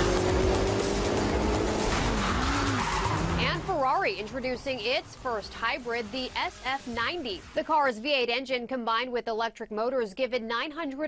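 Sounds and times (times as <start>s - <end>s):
tyre and road noise: 0.0s - 7.0s
car engine at speed: 0.0s - 7.5s.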